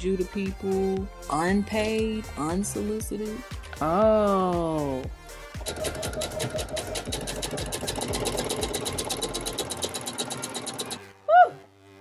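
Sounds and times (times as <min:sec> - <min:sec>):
background music: 0:00.0 - 0:12.0
sewing machine stitching: 0:05.6 - 0:11.1.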